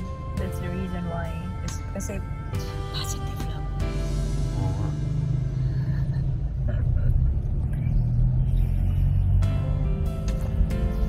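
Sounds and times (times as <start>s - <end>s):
background music: 0.0s - 7.6s, 8.2s - 11.0s
car cabin rumble: 0.0s - 11.0s.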